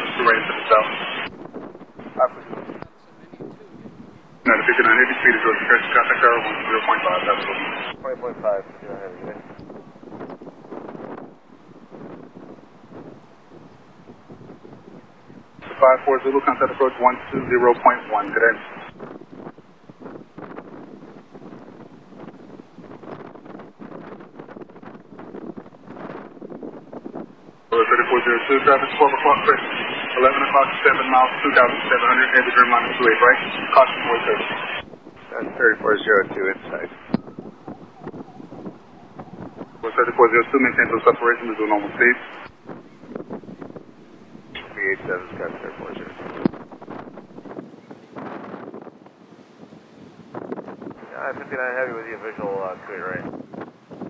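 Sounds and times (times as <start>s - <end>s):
voice over aviation radio: 0.0s - 1.3s, 2.1s - 9.6s, 15.6s - 18.9s, 27.7s - 42.5s, 44.6s - 46.4s, 51.0s - 53.3s
wind noise on microphone: 0.0s - 54.0s.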